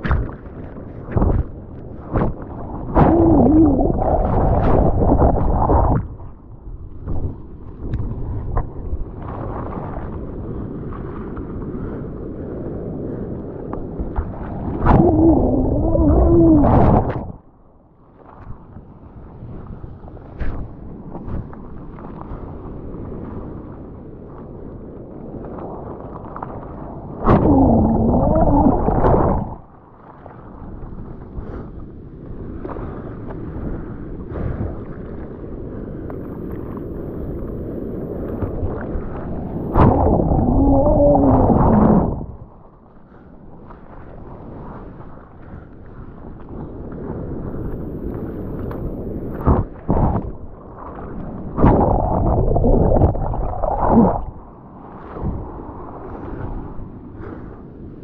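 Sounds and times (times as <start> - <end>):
surf churning water: 0.0 - 58.0
water gurgling surges: 2.5 - 6.2, 14.6 - 17.5, 26.7 - 29.8, 38.6 - 42.7, 49.3 - 55.4.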